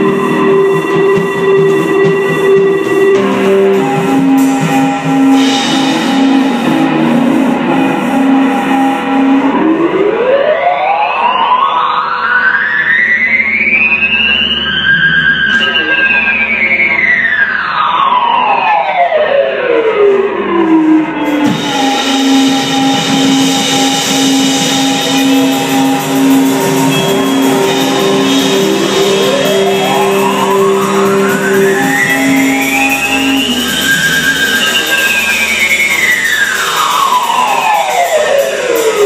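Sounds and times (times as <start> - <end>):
live rock band with cymbals: 0.0 - 9.2, 21.2 - 39.0
electric guitar tone gliding in pitch: 0.0 - 38.9.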